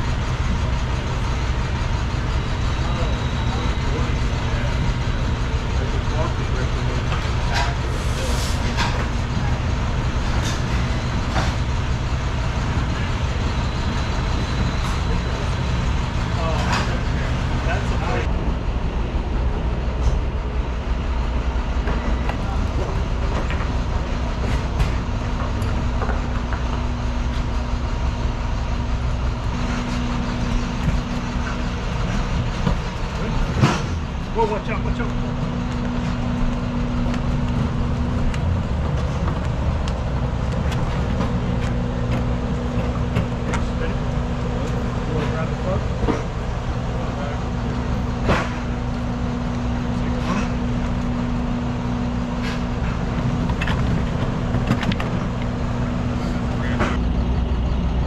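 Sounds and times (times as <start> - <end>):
low mechanical drone: 0.0 - 58.0.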